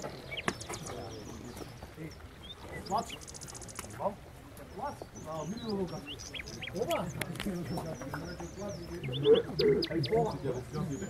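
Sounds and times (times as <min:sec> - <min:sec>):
people talking: 0:00.0 - 0:11.0
small birds chirping: 0:00.0 - 0:11.0.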